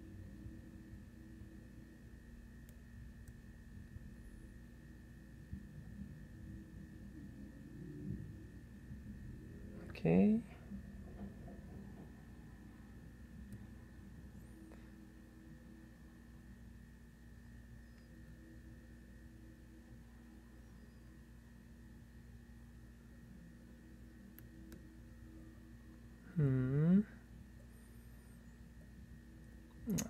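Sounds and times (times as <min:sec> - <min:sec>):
faint hum: 0:00.0 - 0:30.0.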